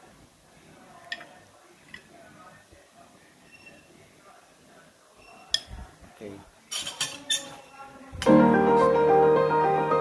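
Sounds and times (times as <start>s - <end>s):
cutlery clinking on dishes: 1.0s - 2.1s, 6.7s - 7.7s.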